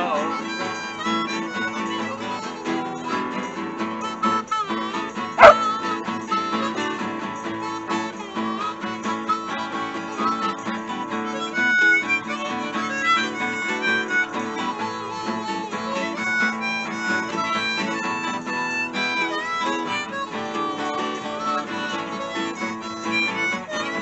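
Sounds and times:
acoustic guitars strumming: 0:00.0 - 0:24.0
harmonica playing: 0:00.0 - 0:24.0
dog barking: 0:05.4 - 0:05.6.

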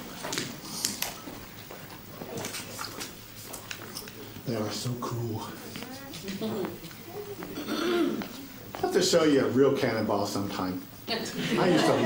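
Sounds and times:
distant indistinct voices: 0:04.5 - 0:09.0.

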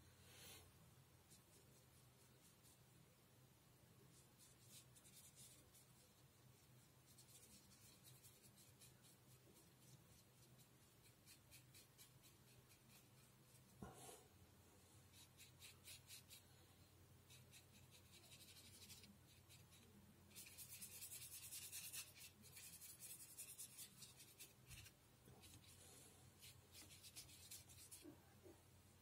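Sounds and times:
paintbrush strokes on paper: 0:01.2 - 0:03.0, 0:04.0 - 0:28.6.

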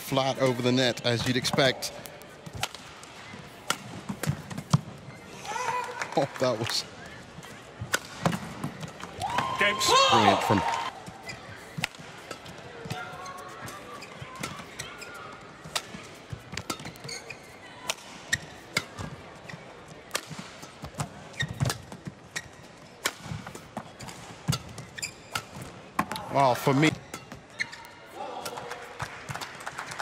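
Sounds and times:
murmur of arena crowd: 0:00.0 - 0:30.0.

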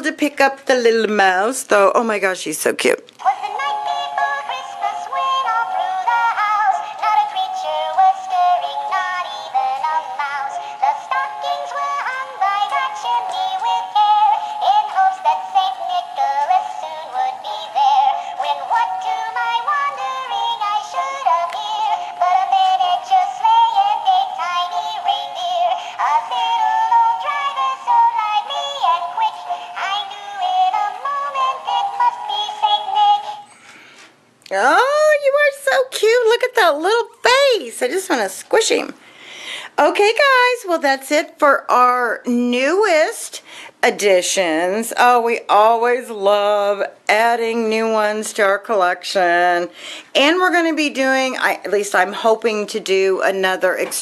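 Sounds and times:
toy speaker playing synthetic singing: 0:03.2 - 0:33.6.

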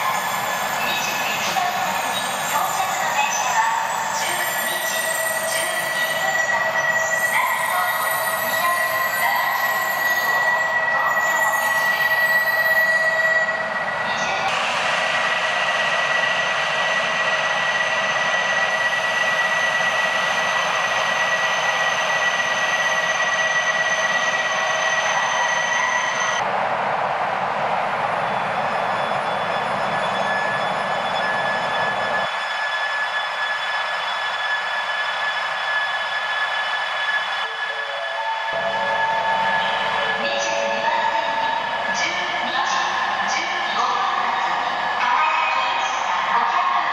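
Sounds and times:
train high whine: 0:00.0 - 0:46.9.

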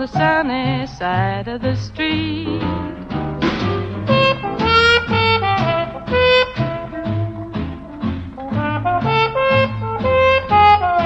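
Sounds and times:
swing jazz band: 0:00.0 - 0:11.0
wind instrument melody: 0:02.6 - 0:11.0.

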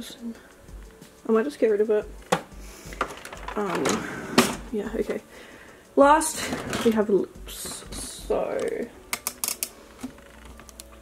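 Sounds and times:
small hard objects clicking: 0:08.5 - 0:11.0.

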